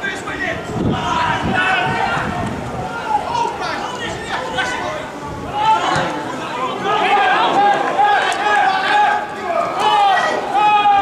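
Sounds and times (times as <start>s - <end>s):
men shouting and chattering: 0.0s - 11.0s
players calling to each other: 0.0s - 11.0s
spectators talking: 0.0s - 11.0s.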